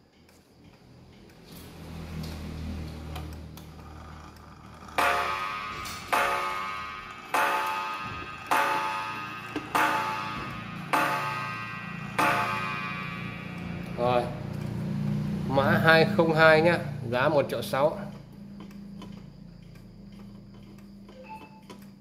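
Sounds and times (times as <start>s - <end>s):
pendulum ticking: 3.0s - 17.0s
clock striking on gong: 4.8s - 15.6s.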